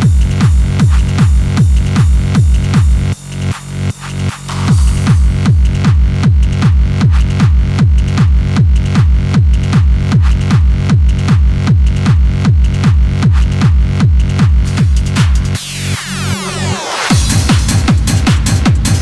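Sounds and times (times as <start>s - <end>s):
fast kick drum: 0.0s - 15.6s, 17.1s - 19.0s.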